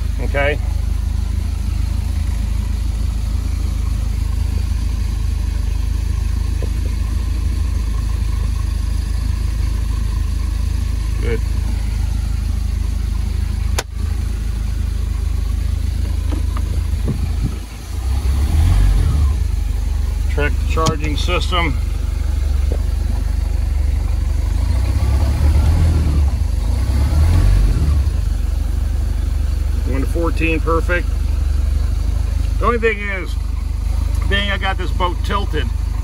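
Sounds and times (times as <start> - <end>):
boat engine idling: 0.0 - 26.8, 28.1 - 36.0.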